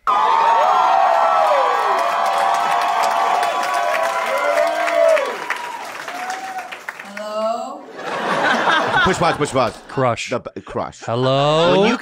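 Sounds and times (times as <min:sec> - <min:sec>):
voices whooping: 0:00.0 - 0:07.3
audience cheering and clapping: 0:00.0 - 0:09.9.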